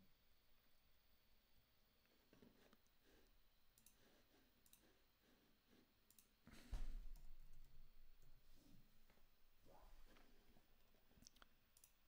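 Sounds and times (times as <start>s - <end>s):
faint computer clicks: 3.7s - 4.9s, 6.1s - 6.3s, 11.2s - 12.0s.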